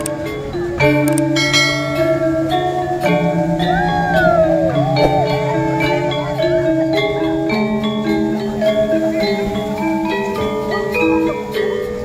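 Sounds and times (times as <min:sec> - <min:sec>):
struck ringing metallic notes: 0:01.4 - 0:10.7
steady low tone: 0:03.1 - 0:09.0.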